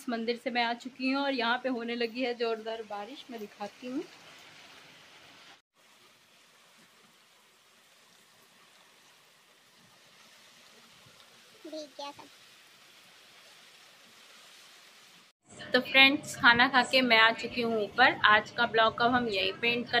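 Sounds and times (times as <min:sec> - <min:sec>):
rain falling: 0:02.8 - 0:15.3.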